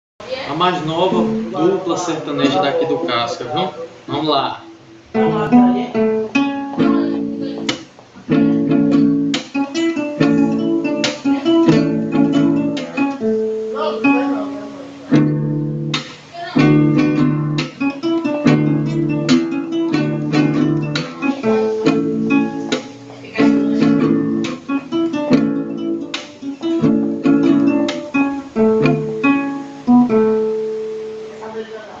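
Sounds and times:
acoustic guitars strumming: 0:00.2 - 0:32.0.

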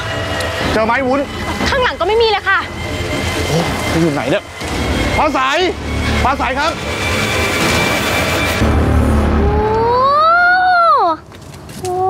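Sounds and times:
low rumble: 0:00.0 - 0:11.2.

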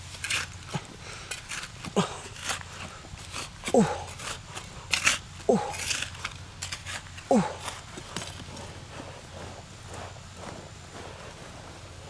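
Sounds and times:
trowel scraping stony soil: 0:00.0 - 0:12.0.

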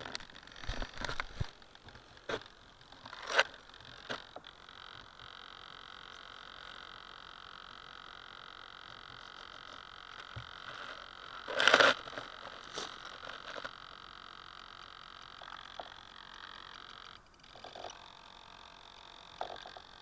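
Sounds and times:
high buzzing tone: 0:00.0 - 0:20.0.

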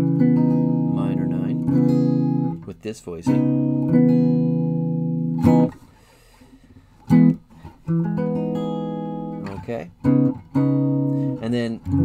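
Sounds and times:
electric guitar chords: 0:00.0 - 0:02.6, 0:03.3 - 0:05.8, 0:07.0 - 0:12.0.

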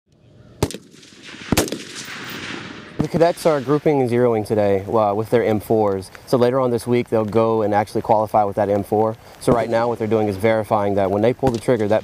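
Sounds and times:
rifle shots with echo: 0:00.6 - 0:04.4, 0:09.4 - 0:10.3.

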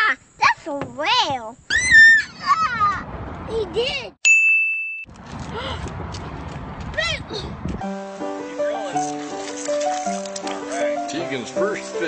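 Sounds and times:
bright ding: 0:04.3 - 0:05.1.

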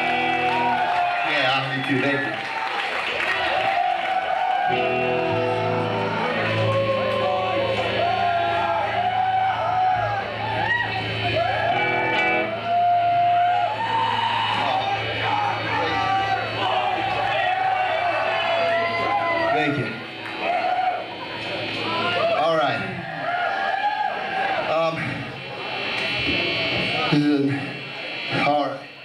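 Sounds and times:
people shouting and whooping: 0:00.0 - 0:27.1
loud rock band playing: 0:00.0 - 0:29.0.

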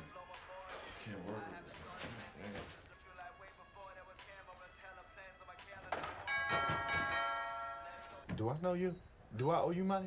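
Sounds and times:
doorbell chime ringing: 0:06.3 - 0:08.2.

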